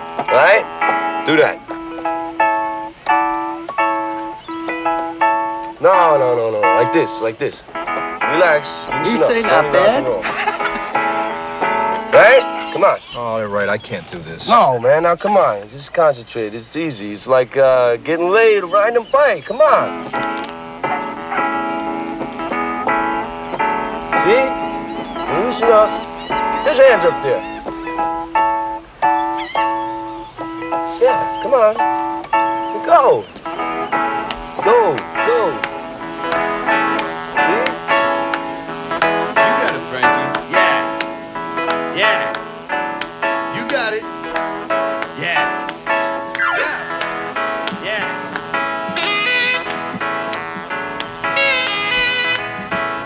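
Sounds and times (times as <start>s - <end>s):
instrument chords over held low note: 0.0s - 12.8s, 19.5s - 46.0s.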